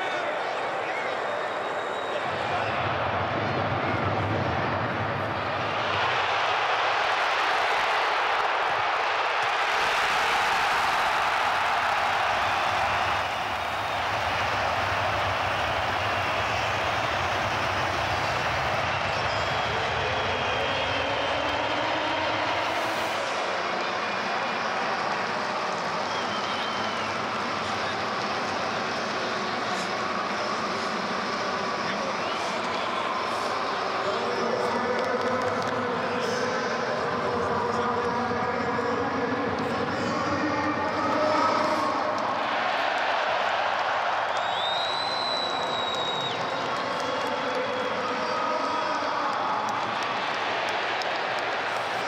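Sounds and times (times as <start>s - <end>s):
stadium crowd cheering: 0.0s - 52.0s.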